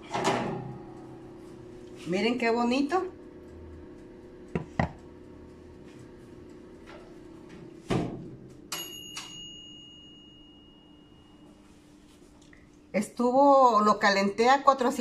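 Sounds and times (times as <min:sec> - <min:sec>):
oven clicks and knocks: 0:00.0 - 0:01.1, 0:04.5 - 0:05.0, 0:06.8 - 0:09.4
faint steady hum: 0:00.0 - 0:15.0
oven timer bell ding: 0:08.7 - 0:11.8.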